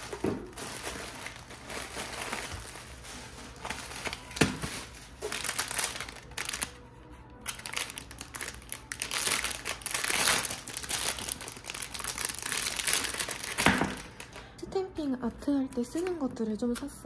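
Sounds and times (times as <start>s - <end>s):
plastic bag crinkling: 0.0s - 14.6s, 15.7s - 16.4s.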